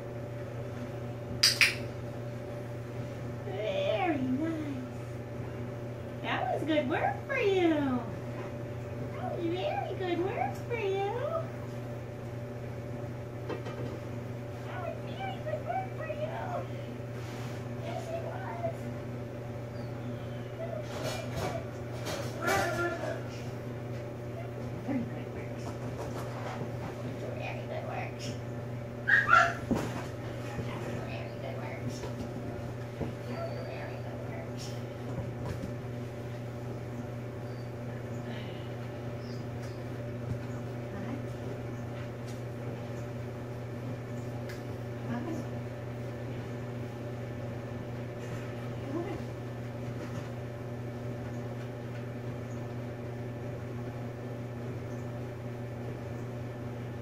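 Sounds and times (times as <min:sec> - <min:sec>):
appliance humming: 0:00.0 - 0:57.0
puppy yipping: 0:29.0 - 0:29.6.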